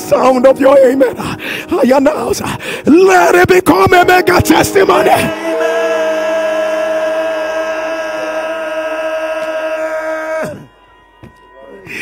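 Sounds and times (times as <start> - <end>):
sustained keyboard chord: 0.0 - 9.7
held vocal note: 4.4 - 10.8.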